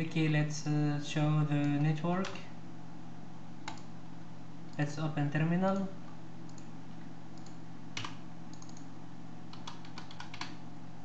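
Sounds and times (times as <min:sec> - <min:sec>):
steady low hum: 0:00.0 - 0:11.0
computer keyboard typing: 0:03.6 - 0:03.9, 0:07.4 - 0:08.9, 0:09.5 - 0:10.6.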